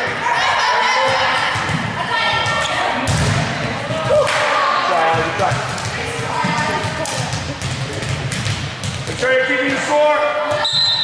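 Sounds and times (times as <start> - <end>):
volleyballs smacking on gym floor: 5.1 - 9.3.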